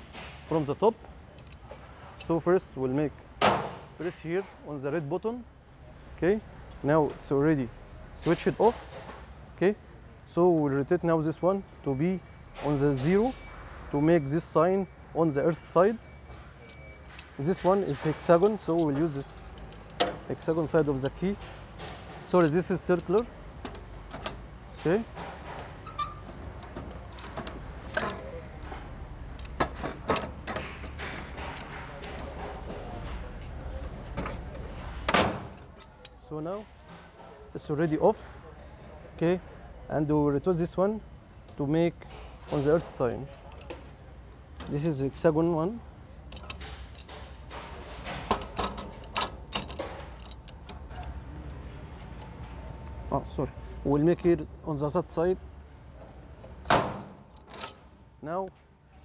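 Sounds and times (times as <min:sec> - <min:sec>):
metallic lever clicks and clinks: 0:16.6 - 0:28.4, 0:29.3 - 0:32.7, 0:34.2 - 0:36.2, 0:46.3 - 0:51.2, 0:56.7 - 0:57.8
metallic clicks and knocks of lever: 0:46.3 - 0:51.1.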